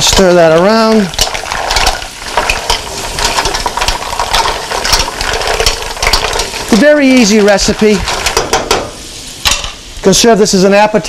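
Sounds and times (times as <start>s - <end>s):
mussel shells clicking in a pan: 0.0s - 8.8s
butter and oil sizzling: 0.0s - 11.0s.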